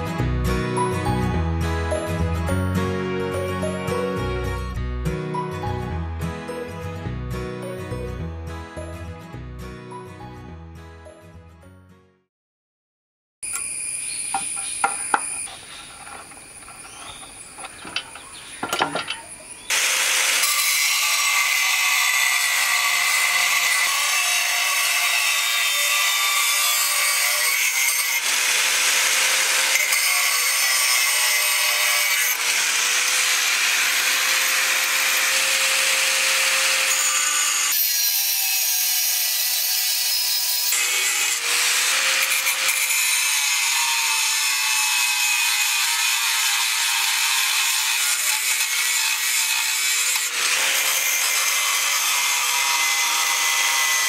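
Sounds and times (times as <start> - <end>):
angle grinder cutting metal: 13.4 - 54.0.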